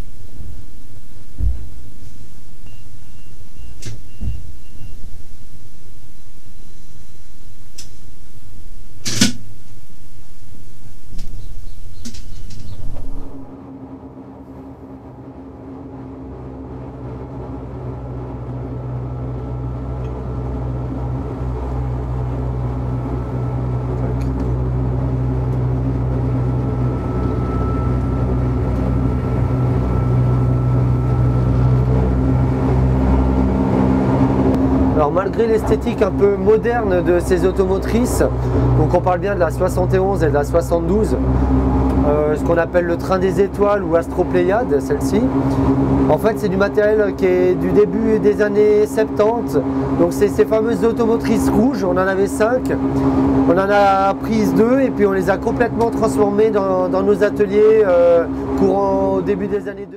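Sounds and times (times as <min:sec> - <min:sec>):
sharp click: 0:07.8 - 0:08.0, 0:09.0 - 0:09.5, 0:11.2 - 0:13.3
railcar rough rumble: 0:11.0 - 0:59.9
traction motors whining: 0:15.6 - 0:59.6.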